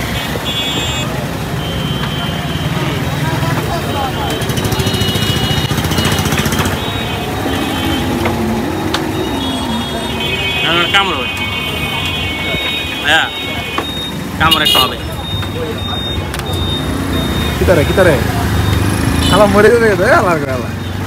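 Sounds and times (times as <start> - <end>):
car horns tooting: 0.0 - 19.9
vehicle engines rumbling: 0.0 - 21.0
people talking: 1.1 - 7.6, 9.3 - 20.7.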